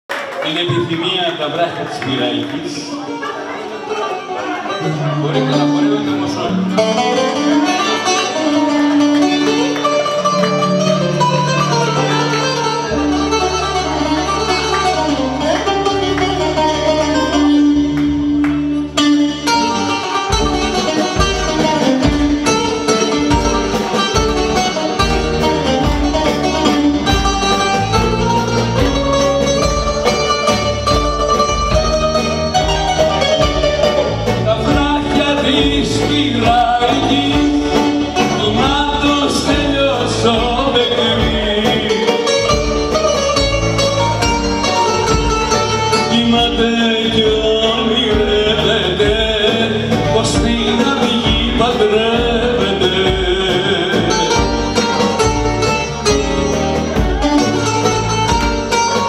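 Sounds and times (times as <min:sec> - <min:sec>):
bouzouki melody: 0:01.0 - 0:59.0
drum kit beat: 0:06.8 - 0:59.0
man singing: 0:33.6 - 0:43.9, 0:44.8 - 0:55.4.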